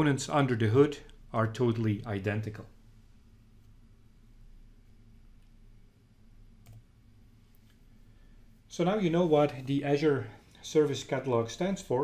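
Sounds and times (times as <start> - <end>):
faint clicks: 6.6 - 6.9.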